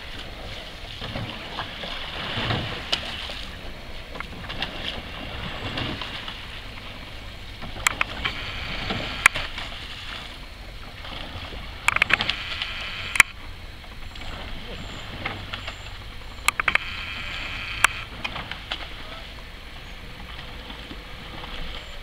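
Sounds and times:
oars and hull moving through water: 0:00.0 - 0:22.0
oars clicking in gates: 0:00.0 - 0:22.0
steady low rumble: 0:00.0 - 0:22.0.

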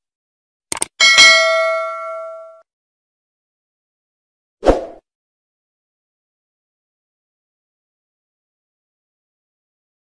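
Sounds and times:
notification bell ding: 0:01.0 - 0:02.6.

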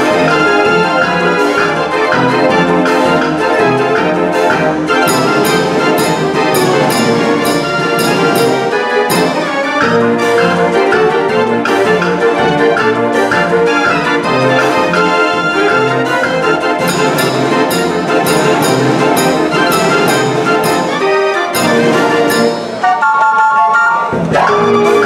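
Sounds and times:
street organ playing a tune: 0:00.0 - 0:25.0
drum strokes: 0:04.8 - 0:11.1, 0:16.8 - 0:23.1.

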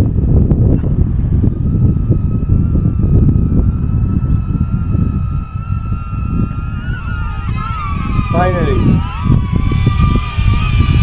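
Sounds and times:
drone propellers whining: 0:00.0 - 0:11.0
wind buffeting microphone: 0:00.0 - 0:11.0.

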